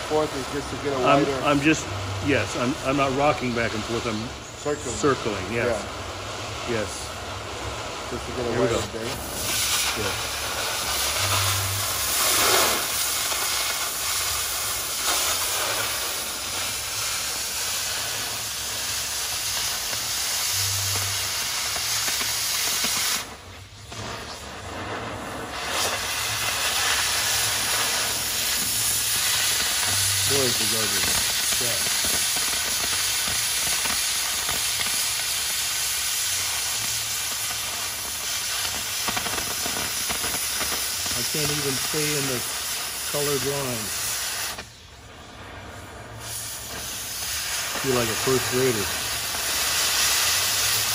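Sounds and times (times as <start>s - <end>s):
cutting torch hissing: 0.0s - 50.9s.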